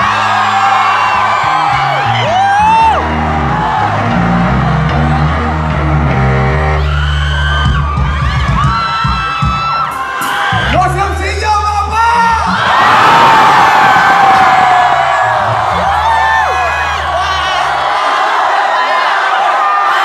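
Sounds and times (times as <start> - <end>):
live pop-rock band: 0.0 - 11.2
driving bass line: 0.0 - 18.0
crowd whooping and yelling: 0.0 - 20.0.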